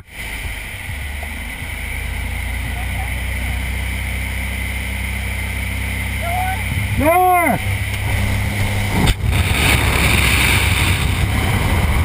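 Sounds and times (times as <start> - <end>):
plane engine and propeller drone: 0.0 - 12.0.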